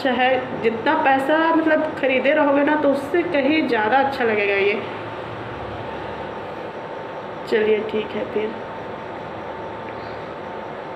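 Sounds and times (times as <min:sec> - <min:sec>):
electric heater whirring: 0:00.0 - 0:10.9
faint high hum: 0:00.0 - 0:10.9.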